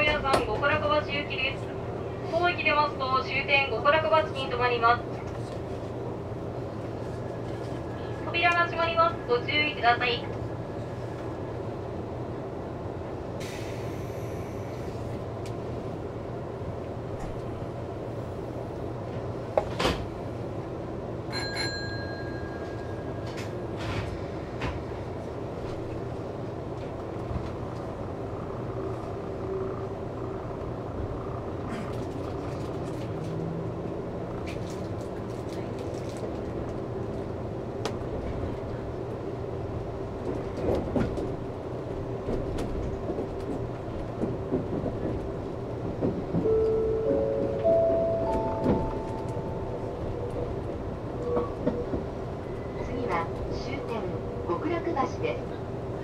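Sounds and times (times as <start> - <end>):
electric train running hum: 0.0 - 56.0.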